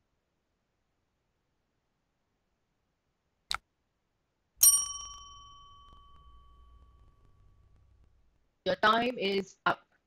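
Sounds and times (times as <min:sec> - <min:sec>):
bell chime ringing: 0:04.6 - 0:07.5.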